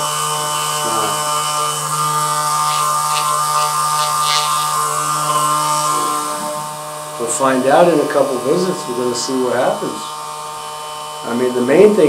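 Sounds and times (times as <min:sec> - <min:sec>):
massage gun motor buzz: 0:00.0 - 0:12.0.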